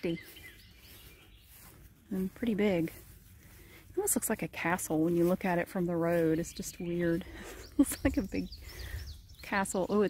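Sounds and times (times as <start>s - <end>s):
faint bird chirps: 0.0s - 1.8s.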